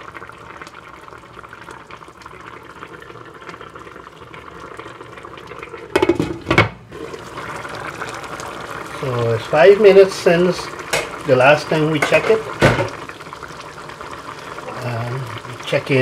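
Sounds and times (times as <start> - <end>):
curry bubbling in a pan: 0.0 - 16.0
glass lid clanking on pan: 5.9 - 6.8.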